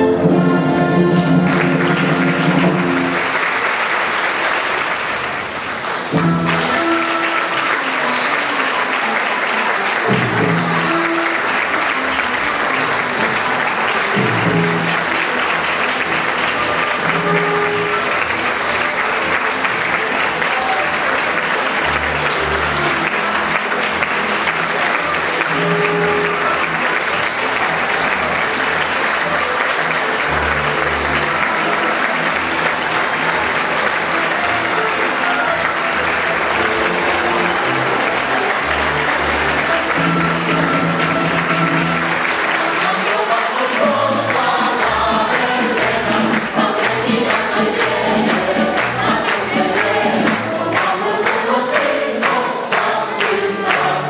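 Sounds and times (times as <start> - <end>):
orchestra playing music: 0.0 - 54.0
audience applauding: 0.8 - 54.0.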